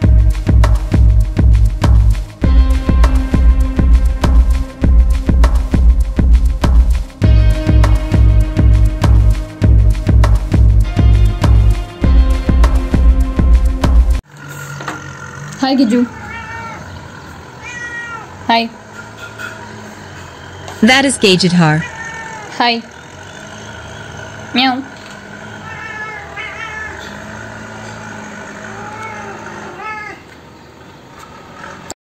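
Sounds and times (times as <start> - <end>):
cat meowing: 15.9 - 18.5, 21.8 - 22.9, 25.6 - 27.2, 28.7 - 30.3.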